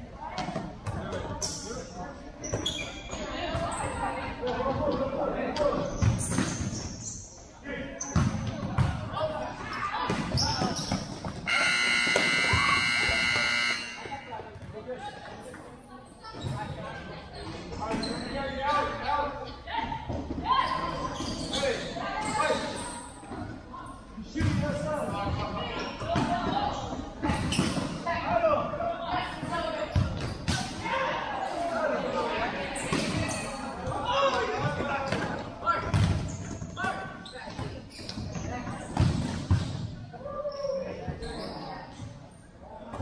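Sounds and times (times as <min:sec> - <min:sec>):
ball kicks and bounces echoing: 0:08.1 - 0:09.1, 0:34.6 - 0:36.6, 0:37.5 - 0:39.9
players calling out: 0:10.1 - 0:14.5
scoreboard buzzer: 0:11.5 - 0:14.3.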